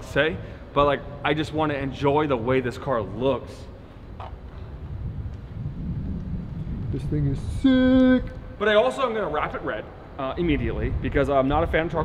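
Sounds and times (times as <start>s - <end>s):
wind buffeting microphone: 4.2s - 12.0s.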